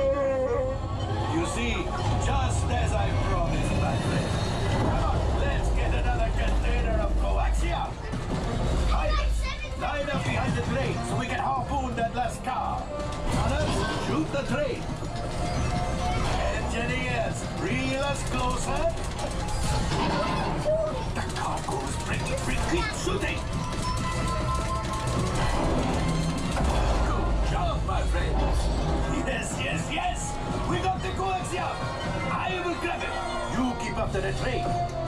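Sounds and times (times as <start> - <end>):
soundtrack music: 0.0 - 35.0.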